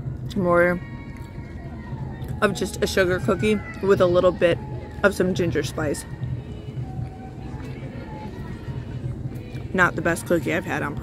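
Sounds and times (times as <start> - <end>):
faint distant voices: 0.0 - 11.0
low outdoor rumble: 0.0 - 11.0.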